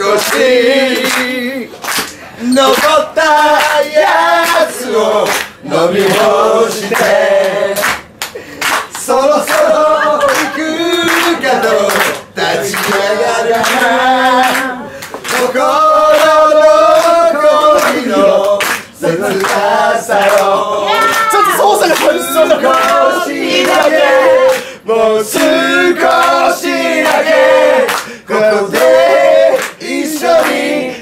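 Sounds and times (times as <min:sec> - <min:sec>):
voices singing a cappella: 0:00.0 - 0:08.2, 0:08.9 - 0:31.0
hands clapping along: 0:00.0 - 0:24.7, 0:25.3 - 0:30.9.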